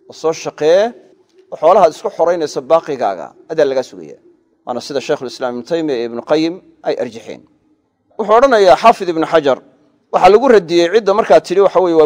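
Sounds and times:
man speaking: 0.0s - 7.5s, 8.2s - 12.0s.

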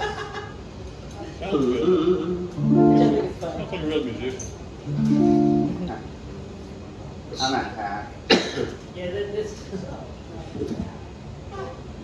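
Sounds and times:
guitar chord ringing: 2.6s - 3.4s, 4.9s - 7.2s
man speaking: 2.6s - 4.1s.

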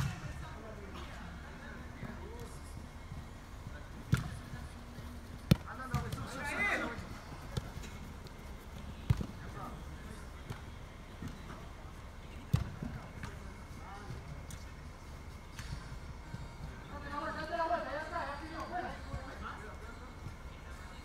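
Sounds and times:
soccer ball kicks: 4.0s - 11.7s, 12.3s - 14.7s.

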